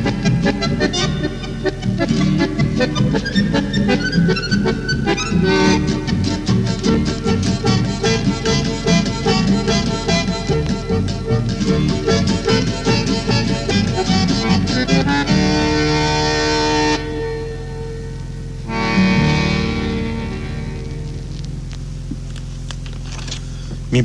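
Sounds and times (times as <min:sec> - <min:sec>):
accordion folk music: 0:00.0 - 0:23.9.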